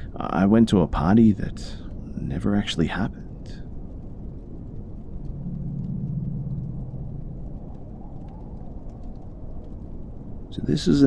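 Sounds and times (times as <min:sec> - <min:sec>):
low hum: 0:00.0 - 0:10.7
faint scattered crackles: 0:00.0 - 0:11.0
low rumbling ambience: 0:00.0 - 0:11.0.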